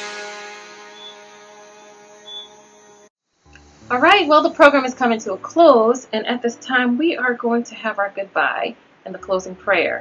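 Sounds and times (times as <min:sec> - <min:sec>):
sustained music chord ringing: 0:00.0 - 0:05.5.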